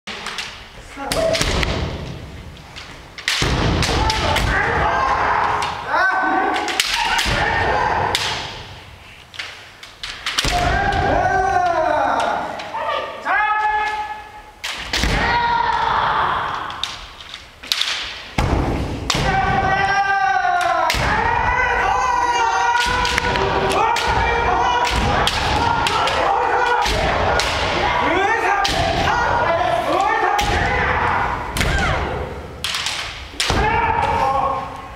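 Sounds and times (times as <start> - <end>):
bamboo swords striking: 2.8 - 5.8, 6.4 - 8.8, 10.0 - 11.1, 22.7 - 27.9, 28.6 - 29.1, 30.4 - 34.2
long drawn-out shouts: 3.8 - 8.5, 10.5 - 14.5, 15.1 - 16.9, 19.1 - 32.4, 33.4 - 34.9.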